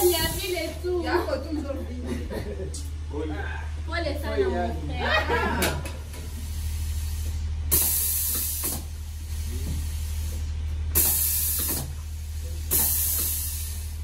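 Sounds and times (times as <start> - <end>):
compressed air hissing: 0.0 - 0.8, 6.0 - 14.0
machine low hum: 0.0 - 14.0.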